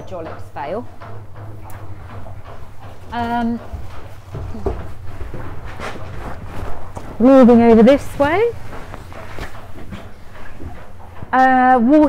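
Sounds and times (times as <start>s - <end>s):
rustling: 0.0s - 11.5s
short knocks: 0.0s - 12.0s.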